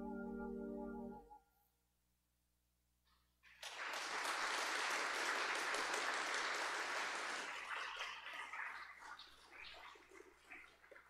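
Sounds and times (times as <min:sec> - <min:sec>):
congregation applauding: 0:03.5 - 0:09.6.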